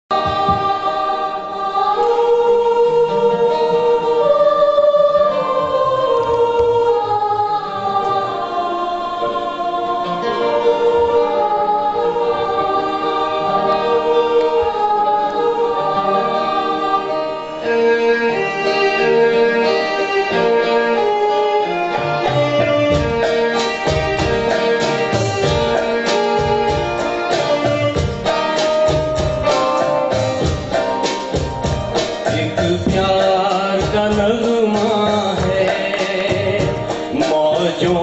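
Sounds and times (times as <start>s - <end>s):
keyboard string-like melody: 0.1s - 38.0s
acoustic and electric guitars: 11.3s - 38.0s.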